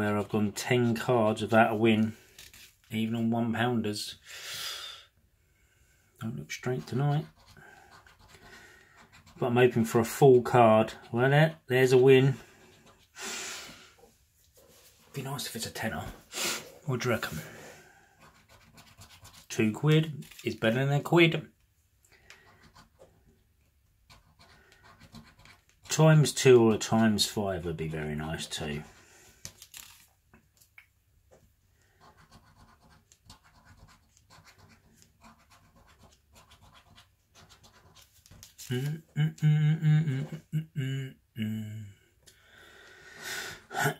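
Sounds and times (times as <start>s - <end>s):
sharp nose sniff: 16.3s - 16.8s.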